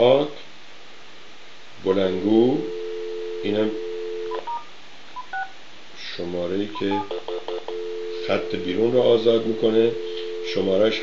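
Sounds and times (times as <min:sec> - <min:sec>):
telephone dial tone: 0:07.7 - 0:11.0.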